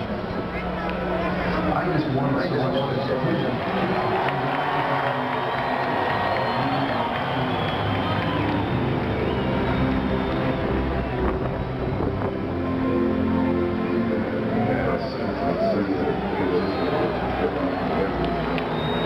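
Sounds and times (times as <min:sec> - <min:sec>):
music over loudspeakers: 0:07.2 - 0:19.0.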